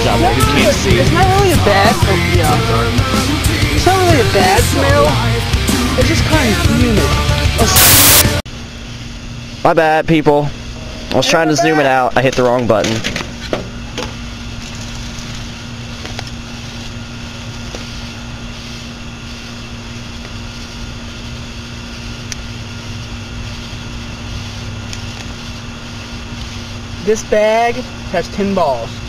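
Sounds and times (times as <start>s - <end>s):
low electrical hum: 7.7s - 29.0s.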